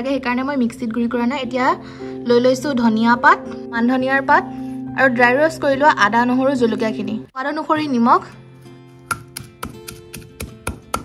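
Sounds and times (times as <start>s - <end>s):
pestle pounding in stone mortar: 9.1s - 11.0s.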